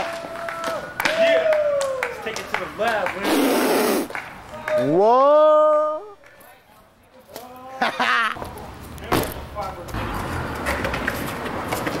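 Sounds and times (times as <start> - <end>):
man yelling: 4.7 - 6.2.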